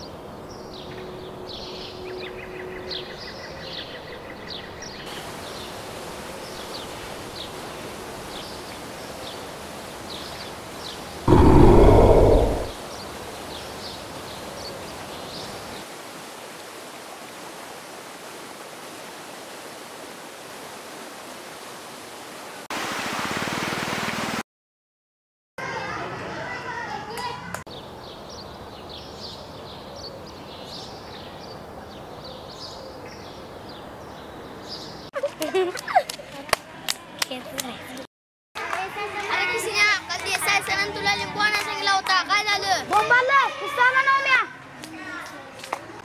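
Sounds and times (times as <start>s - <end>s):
birds chirping: 11.3s - 12.7s
deep roar falling in pitch: 11.3s - 12.8s
steady rushing noise: 11.3s - 12.8s.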